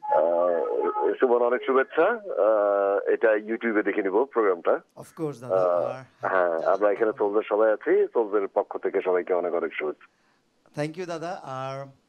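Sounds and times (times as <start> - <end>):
person talking over telephone: 0.0 - 10.0, 10.8 - 11.9.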